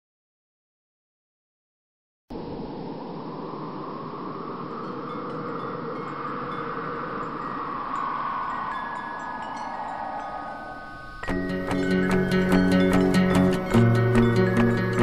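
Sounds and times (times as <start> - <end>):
wind-like whooshing: 2.3 - 15.0
high chime tones: 4.8 - 15.0.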